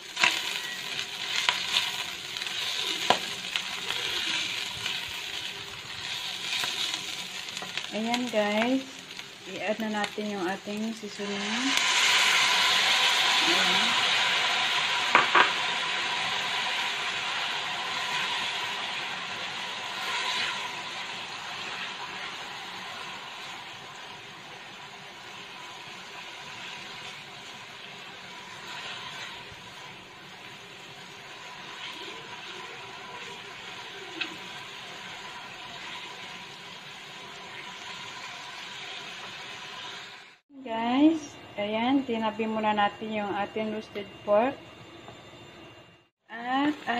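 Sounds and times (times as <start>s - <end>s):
pork sizzling in a wok: 0.0s - 43.6s
spatula scraping a pan: 19.8s - 23.1s, 28.4s - 29.7s.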